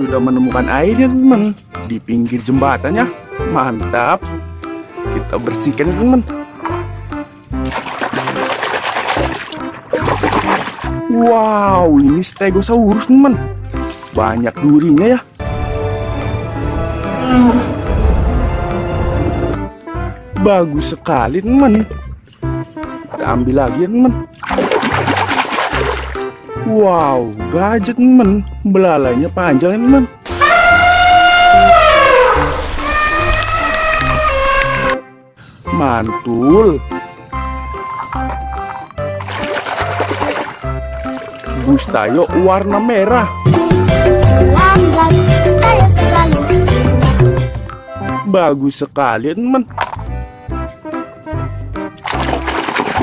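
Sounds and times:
background music with bass: 0.0s - 48.4s, 49.6s - 53.0s
water splashing and churning: 6.6s - 12.5s, 13.1s - 14.8s, 24.3s - 26.4s, 30.3s - 35.0s, 37.8s - 42.3s, 51.9s - 53.0s
elephant trumpeting: 15.5s - 19.6s, 30.3s - 35.0s.

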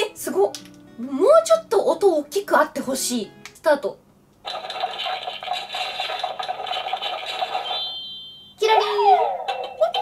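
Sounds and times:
kitchen timer alarm rattling: 6.8s - 8.4s.

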